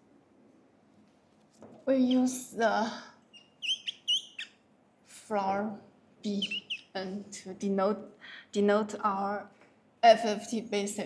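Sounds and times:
marker squeaking on whiteboard: 0:01.9 - 0:02.5, 0:03.3 - 0:04.6, 0:06.3 - 0:07.0.

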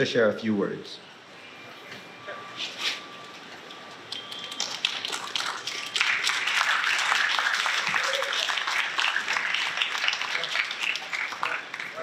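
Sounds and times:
audience applauding: 0:04.3 - 0:12.0.

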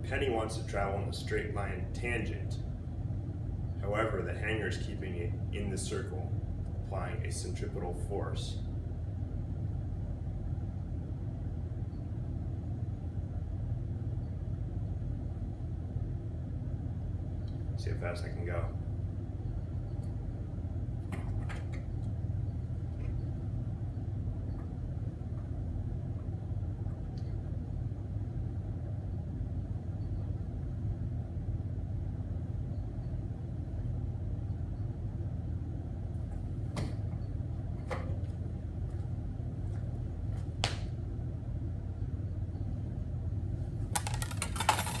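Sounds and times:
low room hum: 0:00.0 - 0:45.0.

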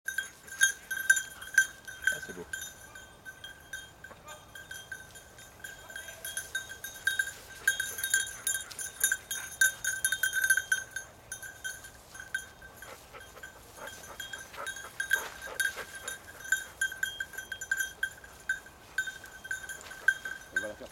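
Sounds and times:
dog collar bell jingling: 0:00.1 - 0:20.9.

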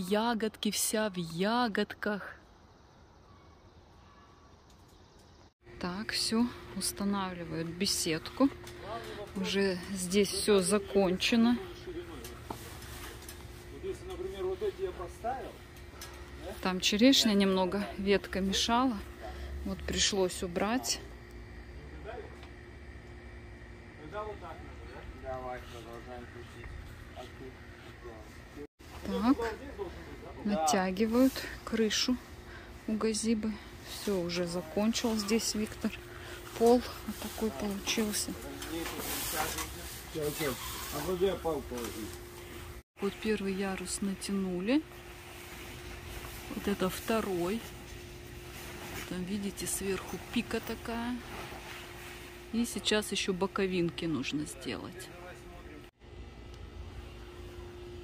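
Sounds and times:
steady hum: 0:05.0 - 0:58.0.

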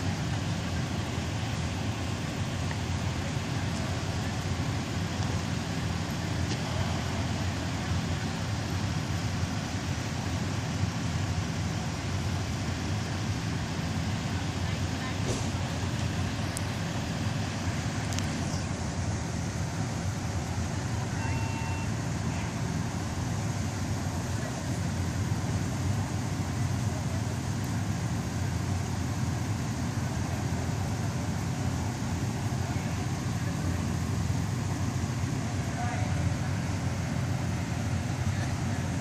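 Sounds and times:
vehicle engine idling: 0:00.0 - 0:39.0.

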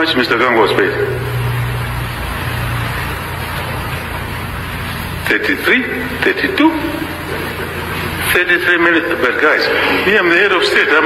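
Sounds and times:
steady background hiss: 0:00.0 - 0:11.0
low hum: 0:00.4 - 0:10.5.

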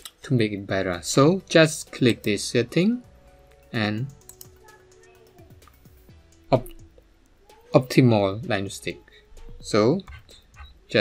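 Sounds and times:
quiet background music: 0:00.0 - 0:11.0
computer mouse clicks: 0:04.1 - 0:04.6.

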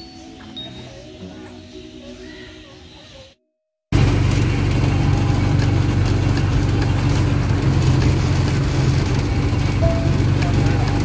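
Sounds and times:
juice crusher motor humming: 0:04.0 - 0:11.0.

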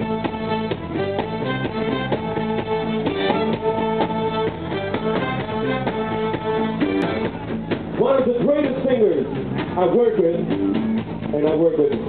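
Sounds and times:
soul band playing: 0:00.0 - 0:12.0
steady drum beat: 0:00.0 - 0:12.0.

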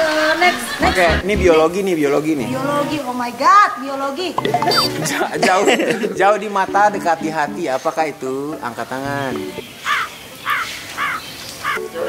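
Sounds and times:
crow cawing: 0:09.8 - 0:11.8.

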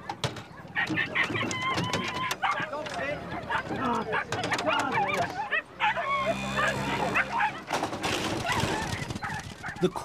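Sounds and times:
dogs yelping and whining: 0:00.0 - 0:09.8.

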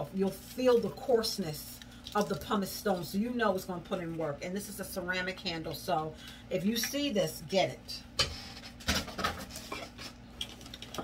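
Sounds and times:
small objects clicking and rustling: 0:01.8 - 0:03.1, 0:10.4 - 0:11.0.

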